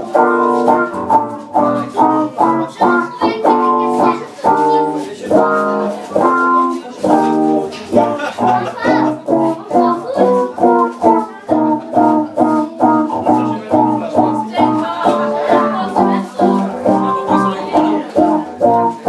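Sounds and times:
bass notes: 0:00.0 - 0:19.0
electric guitar chords: 0:00.0 - 0:19.0.

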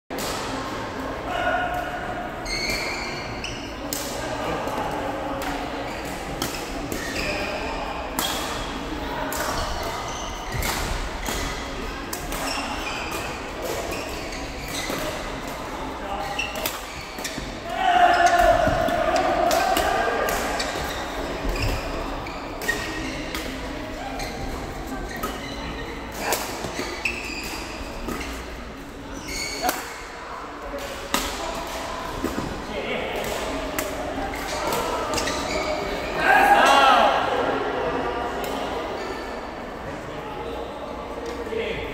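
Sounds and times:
voices in hall: 0:00.1 - 0:41.9
racket hitting shuttlecock: 0:18.2 - 0:21.8.

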